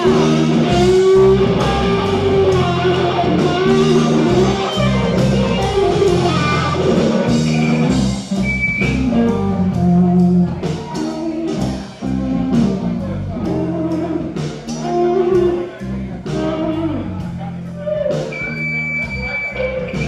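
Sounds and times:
drum kit steady beat: 0.0s - 20.0s
electric bass: 0.0s - 20.0s
electric guitar lines: 0.0s - 20.0s.

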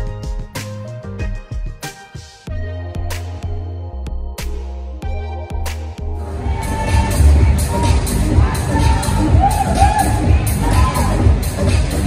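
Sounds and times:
bass line: 0.0s - 12.0s.

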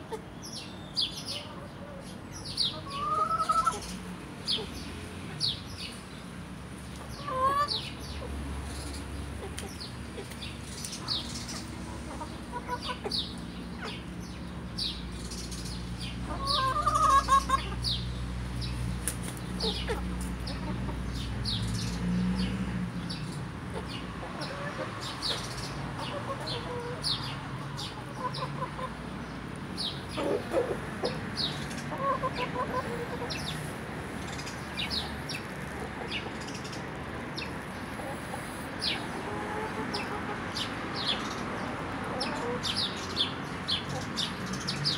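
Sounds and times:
chickens clucking: 0.0s - 5.0s, 6.8s - 44.9s.

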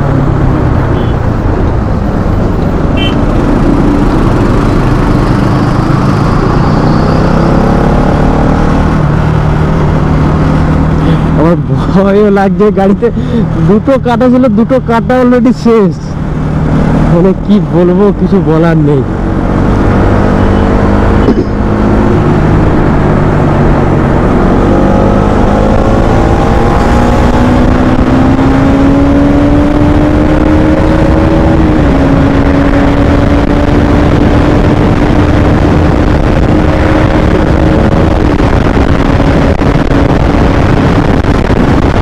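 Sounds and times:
motorcycle engine: 0.0s - 11.9s, 18.9s - 42.0s
wind rush on microphone: 19.0s - 42.0s.

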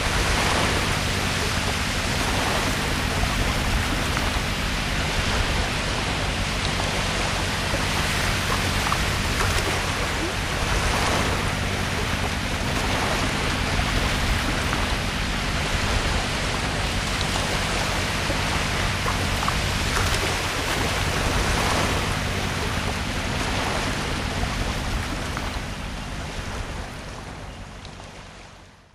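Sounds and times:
surf breaking on sandy beach: 0.0s - 25.6s.

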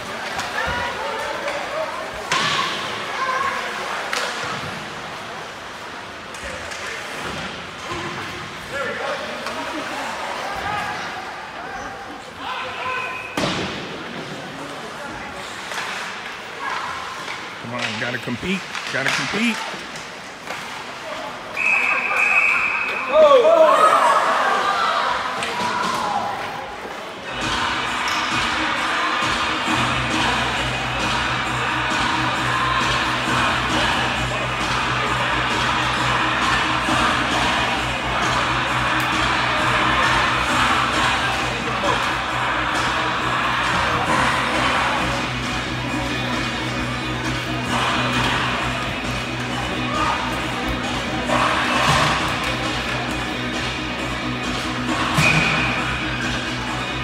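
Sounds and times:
music over public address: 17.6s - 19.6s, 25.6s - 57.0s
referee's whistle blast: 21.6s - 23.1s
crowd shouting: 22.1s - 26.7s, 27.3s - 45.9s, 47.2s - 49.2s, 49.8s - 53.1s.

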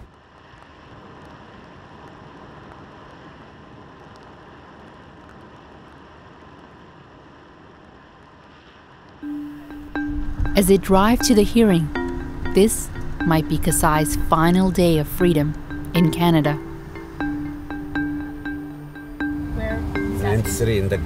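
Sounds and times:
soft documentary music: 9.2s - 21.0s.

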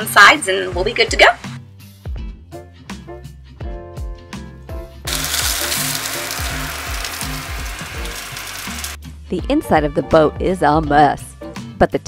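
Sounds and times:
background music: 0.0s - 12.0s
burgers sizzling in a pan: 5.1s - 9.0s.

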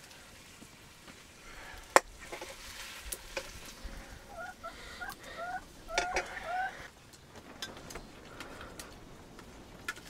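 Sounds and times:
chicken clucking: 4.0s - 6.9s.

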